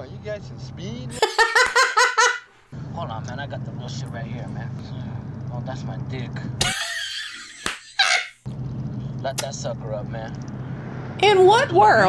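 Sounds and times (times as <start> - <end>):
car engine hum: 0.0 - 7.2, 8.4 - 12.0
woman laughing in shrieks: 6.6 - 8.4.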